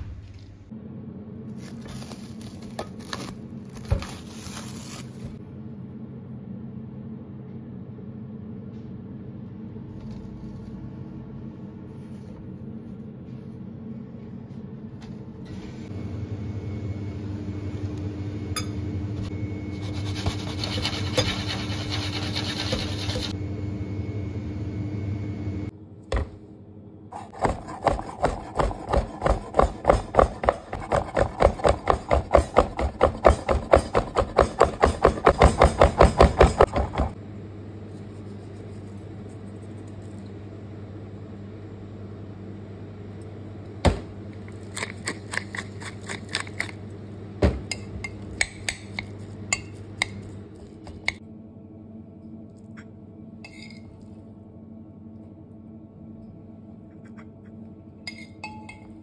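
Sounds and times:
low hum: 0.0 - 3.7, 5.3 - 28.9, 49.0 - 59.0
knife chopping on wooden board: 27.2 - 37.2.

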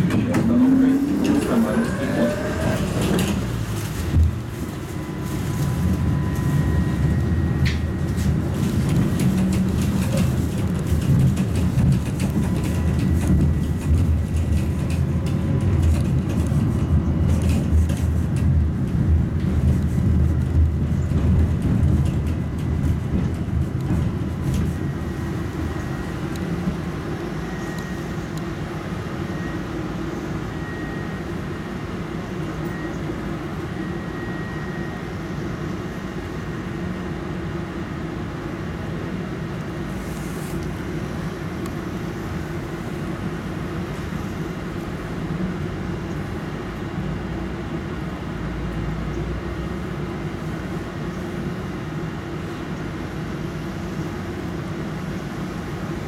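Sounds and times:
tram wheels rumbling on rails: 0.0 - 56.0.

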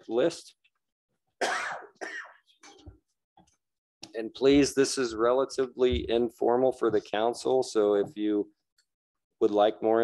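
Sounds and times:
person coughing: 1.4 - 2.8.

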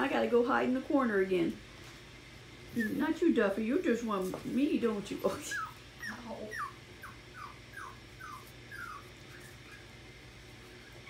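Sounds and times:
puppy whimpering: 2.7 - 3.1, 5.3 - 10.0.

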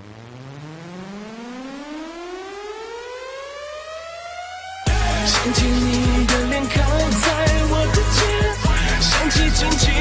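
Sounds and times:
electronic rising sweep: 0.0 - 10.0.

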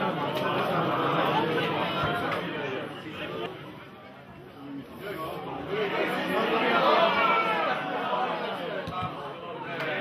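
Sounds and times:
crowd voices shouting: 5.6 - 10.0.

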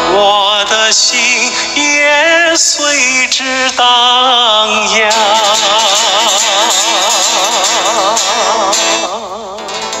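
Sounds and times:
man singing with vibrato: 0.0 - 10.0
backing music: 4.7 - 10.0.

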